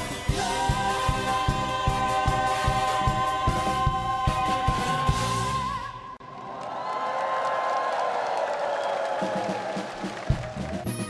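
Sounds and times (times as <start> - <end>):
bass and drum beat: 0.0 - 5.8, 9.6 - 11.0
band playing: 0.0 - 5.9, 9.6 - 11.0
audience applauding and cheering: 0.4 - 11.0.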